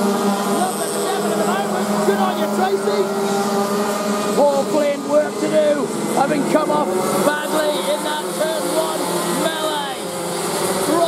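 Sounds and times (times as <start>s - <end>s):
racing kart engines revving: 0.0s - 11.0s.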